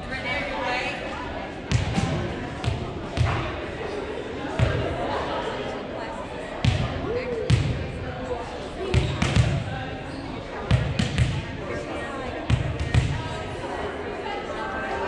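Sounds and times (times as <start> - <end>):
background chatter: 0.0 - 15.0.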